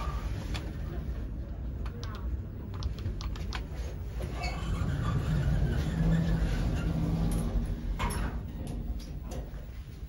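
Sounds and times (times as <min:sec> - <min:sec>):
elevator door drive hum: 0:00.0 - 0:10.0
elevator doors clunking shut: 0:04.2 - 0:09.8.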